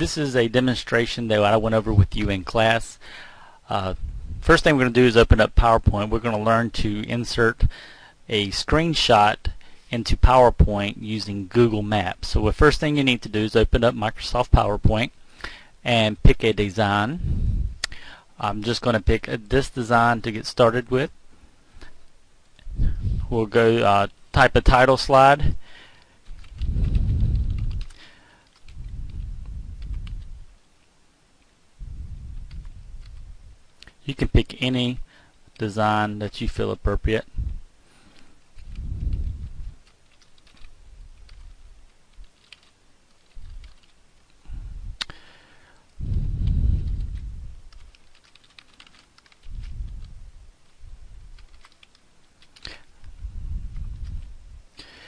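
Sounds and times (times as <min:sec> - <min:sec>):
low rumble: 0:28.7 - 0:30.6, 0:31.8 - 0:33.6, 0:46.0 - 0:47.9, 0:49.4 - 0:51.4, 0:53.0 - 0:54.7
typing on computer keyboard: 0:39.8 - 0:41.5, 0:42.1 - 0:44.0, 0:47.7 - 0:49.5, 0:51.4 - 0:52.7
keyboard typing clicks: 0:47.7 - 0:49.5, 0:51.4 - 0:52.7.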